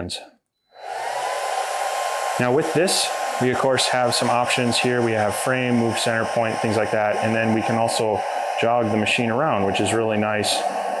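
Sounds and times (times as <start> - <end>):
machine fans whooshing with whine: 0.8 - 11.0.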